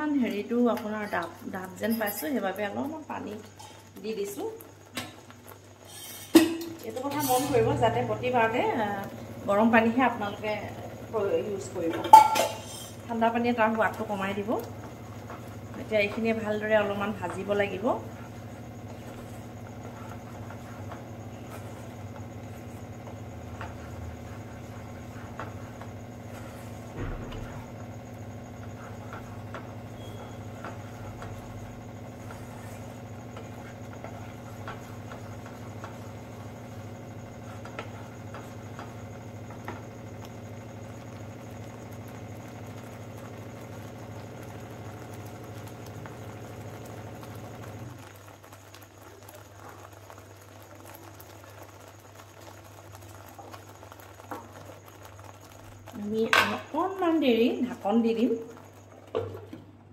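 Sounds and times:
gravy simmering and bubbling: 0:00.0 - 0:59.9
mechanical hum: 0:00.0 - 0:59.9
spoon in pot: 0:12.0 - 0:13.0.

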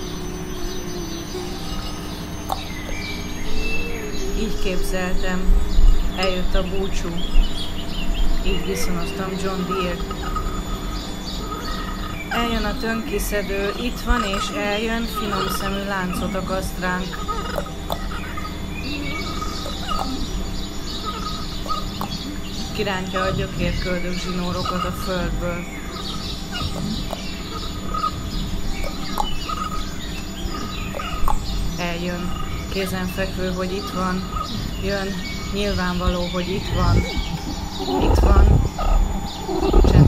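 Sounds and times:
birds chirping: 0:00.0 - 0:40.0
steady low hum: 0:00.0 - 0:40.0
low rumble: 0:22.2 - 0:28.8, 0:34.2 - 0:40.0.

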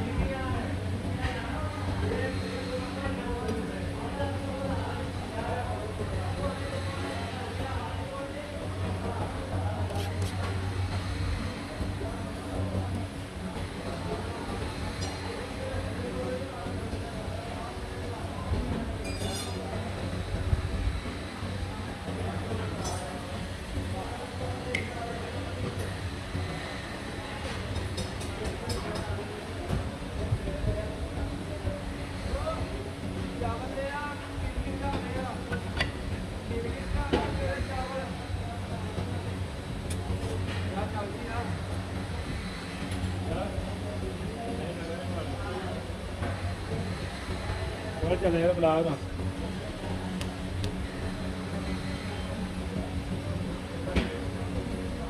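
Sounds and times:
steady machine hum: 0:00.0 - 0:55.0
voices: 0:00.0 - 0:55.0.

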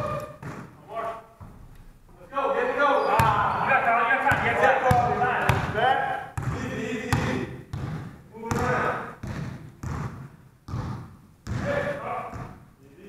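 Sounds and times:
basketball bouncing on hardwood floor: 0:00.0 - 0:00.8, 0:04.3 - 0:05.8, 0:06.4 - 0:12.7
players shouting: 0:02.2 - 0:07.5.

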